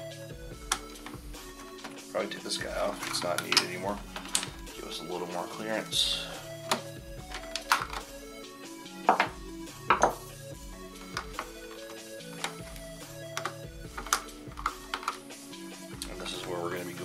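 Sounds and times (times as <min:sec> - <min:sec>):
background music with held notes: 0:00.0 - 0:17.0
plastic parts clicking and knocking: 0:00.6 - 0:01.2, 0:02.8 - 0:04.6, 0:06.6 - 0:08.1, 0:09.1 - 0:10.2, 0:11.0 - 0:15.3.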